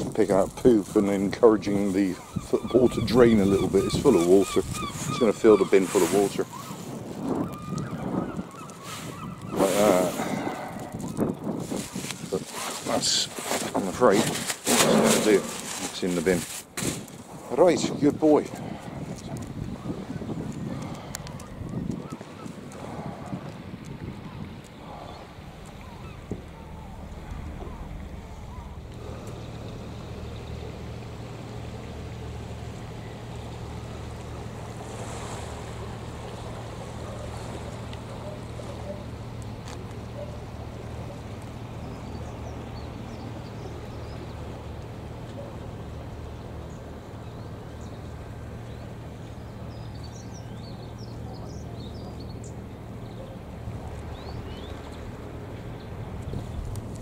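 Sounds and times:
wind: 0:00.0 - 0:57.0
lapping water: 0:08.7 - 0:11.3, 0:18.5 - 0:26.6, 0:27.2 - 0:32.8
boat diesel engine drone: 0:17.5 - 0:57.0.

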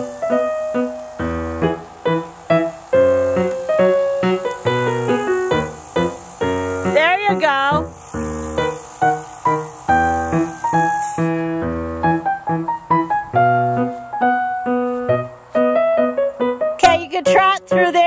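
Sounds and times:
piano melody: 0:00.0 - 0:18.0.

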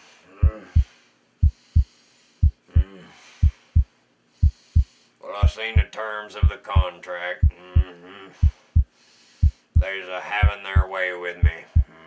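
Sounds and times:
low thumping heartbeat-like beat: 0:00.4 - 0:12.0.

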